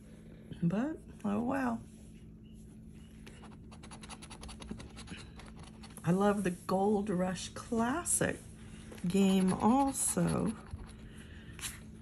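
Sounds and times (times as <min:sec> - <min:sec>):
coin scraping scratch card: 0:03.4 - 0:06.0.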